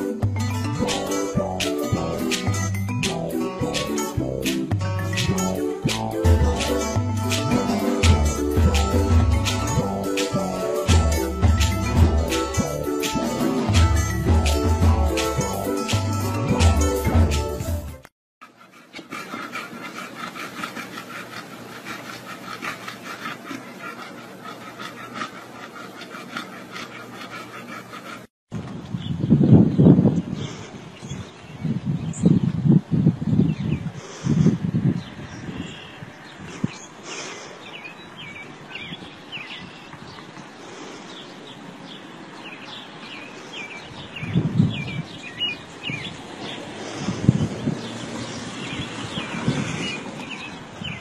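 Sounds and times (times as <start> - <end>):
dog panting: 0.8 - 15.8, 18.4 - 28.3
small birds chirping: 34.7 - 51.0.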